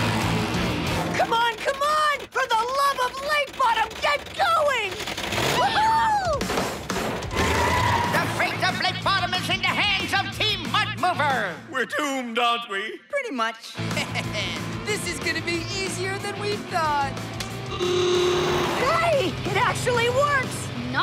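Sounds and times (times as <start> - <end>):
race car sound effects: 17.1 - 20.3.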